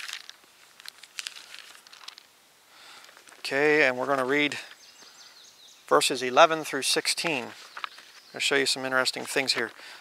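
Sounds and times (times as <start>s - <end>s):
book pages rustling: 7.5s - 8.3s.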